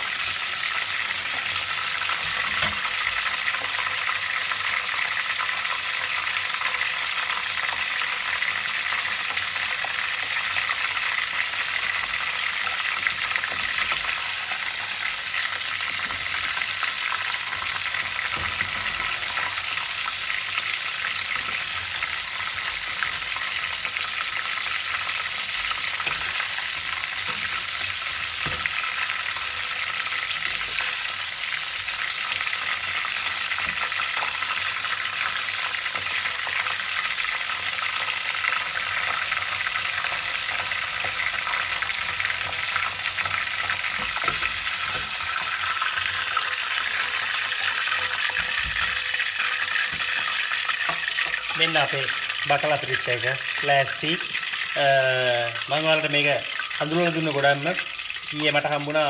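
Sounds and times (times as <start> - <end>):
fish deep-frying in hot oil: 0.0 - 59.0.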